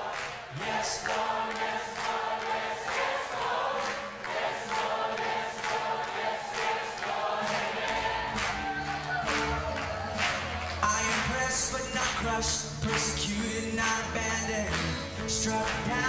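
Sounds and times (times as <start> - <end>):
congregation singing: 0.0 - 16.0
worship band playing: 4.0 - 16.0.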